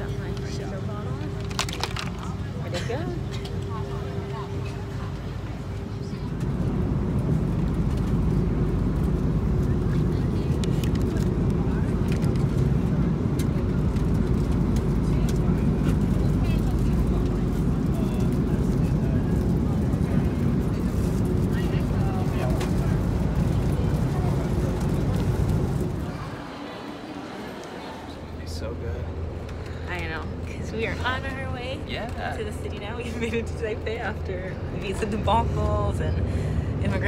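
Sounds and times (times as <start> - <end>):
airliner cabin rumble: 0.0 - 37.0
faint constant hum: 0.0 - 37.0.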